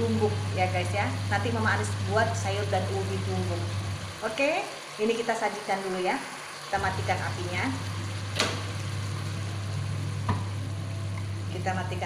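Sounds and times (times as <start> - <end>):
fish sizzling in a pan: 0.0 - 12.0
low hum: 6.8 - 12.0.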